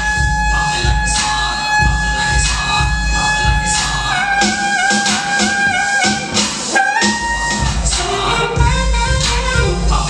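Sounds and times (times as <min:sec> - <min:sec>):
alto saxophone long note: 0:00.0 - 0:10.0
backing track with bass-heavy beat: 0:00.0 - 0:10.0.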